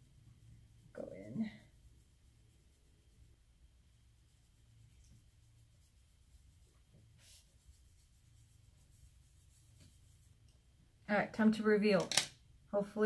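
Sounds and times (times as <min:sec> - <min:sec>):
brush scratching on mesh: 0:00.0 - 0:10.5.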